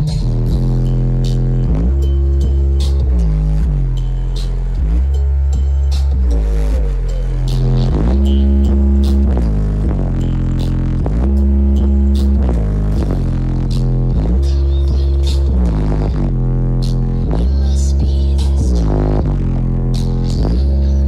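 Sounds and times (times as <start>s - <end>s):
deep bass notes: 0.0s - 21.0s.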